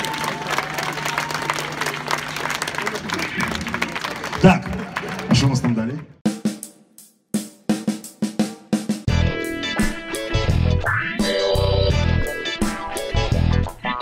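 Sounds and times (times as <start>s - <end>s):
rock band playing: 8.3s - 14.0s.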